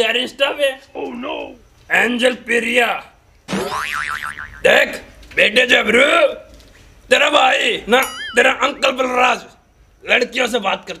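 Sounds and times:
cartoon boing: 0:03.5 - 0:04.7, 0:08.0 - 0:08.4
man talking: 0:07.1 - 0:09.5.

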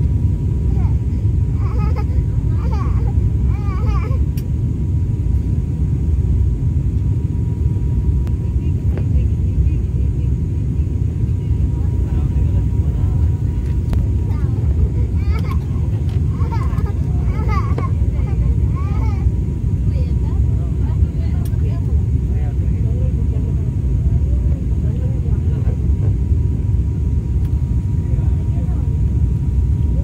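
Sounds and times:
airliner cabin roar: 0:00.0 - 0:30.0.

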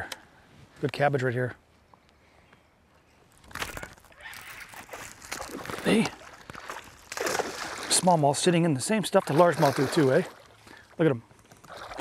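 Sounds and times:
fish splashing at water surface: 0:04.4 - 0:08.1.

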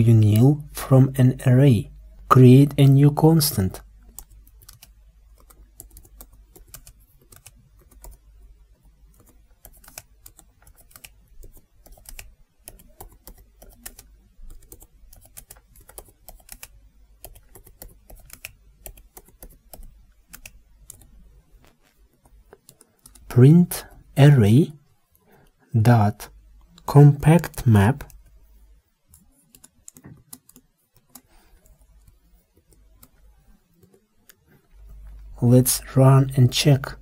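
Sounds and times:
keyboard typing clicks: 0:04.0 - 0:08.3, 0:09.1 - 0:21.1, 0:22.2 - 0:23.3, 0:29.1 - 0:34.4.

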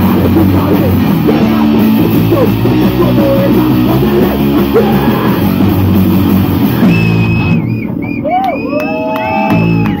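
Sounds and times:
hard rock band playing: 0:00.0 - 0:08.1
person whooping: 0:02.0 - 0:05.7, 0:08.2 - 0:10.0
high whistling tones: 0:06.6 - 0:09.9.

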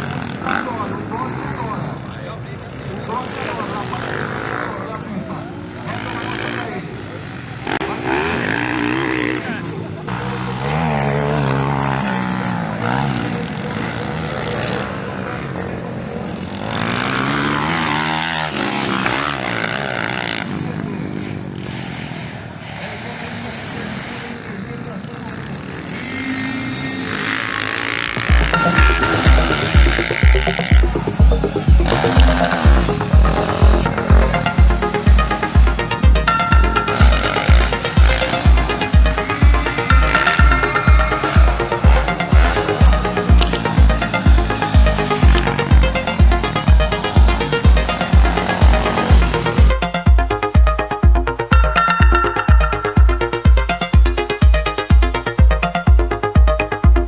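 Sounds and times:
motocross bikes revving: 0:00.0 - 0:50.0
electronic music with heavy beat: 0:28.1 - 0:57.0.

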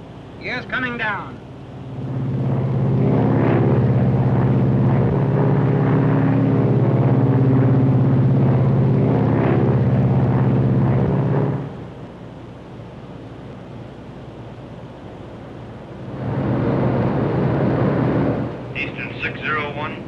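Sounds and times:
propeller plane engines droning: 0:00.0 - 0:20.0.

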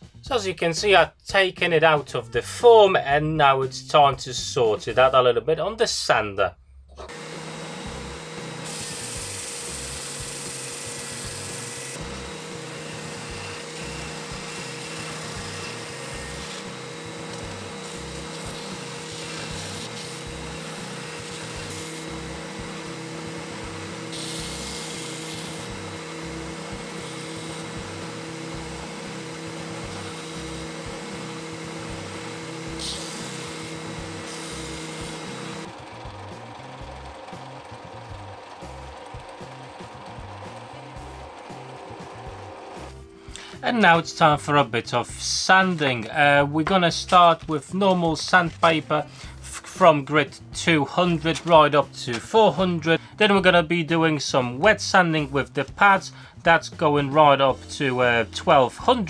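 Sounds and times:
belt sander motor hum: 0:07.0 - 0:43.0
belt sander rasping on wood: 0:07.1 - 0:43.0.

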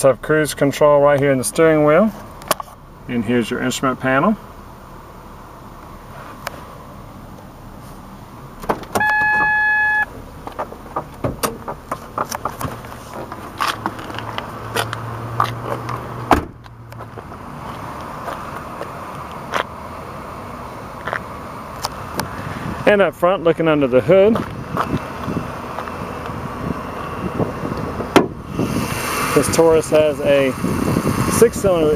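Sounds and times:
car door shutting: 0:08.6 - 0:14.1, 0:15.7 - 0:16.7, 0:28.1 - 0:28.4
car warning chime: 0:09.0 - 0:10.1
clicks and knocks of movement: 0:10.4 - 0:16.0.

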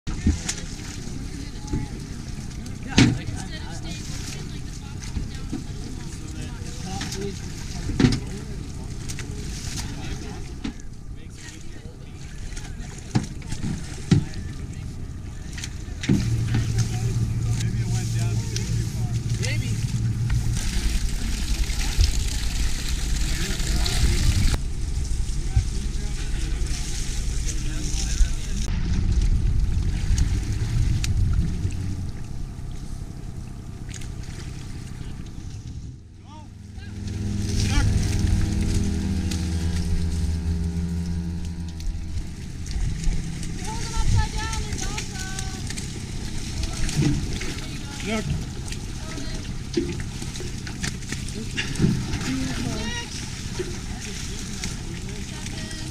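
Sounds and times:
motor running steadily: 0:00.1 - 0:55.9
river water: 0:00.1 - 0:55.9
wind on microphone: 0:18.8 - 0:33.3.

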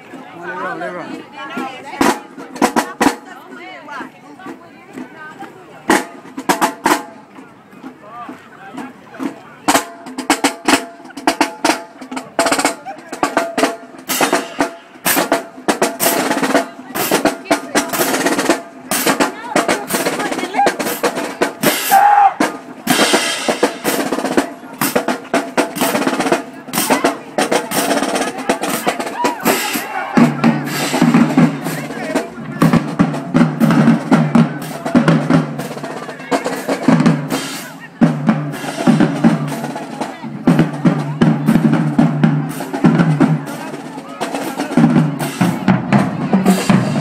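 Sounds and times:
marching drumline cadence: 0:00.0 - 0:47.0.

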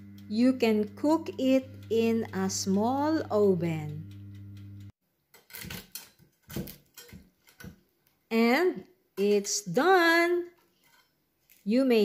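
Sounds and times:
electric oven hum: 0:00.0 - 0:04.9.

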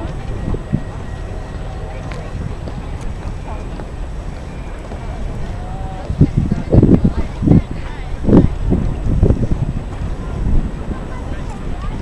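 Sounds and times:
faint voices talking: 0:00.0 - 0:12.0
wind buffeting microphone: 0:00.0 - 0:12.0.

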